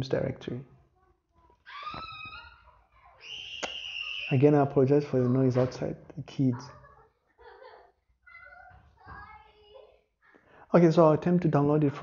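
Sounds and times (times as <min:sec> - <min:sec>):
children shouting: 0:01.5 - 0:06.0, 0:06.6 - 0:10.0.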